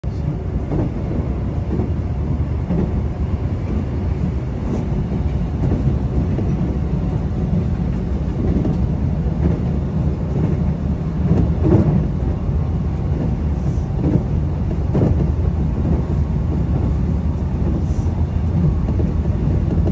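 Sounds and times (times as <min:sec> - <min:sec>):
train wheels rumbling on rails: 0:00.0 - 0:19.9.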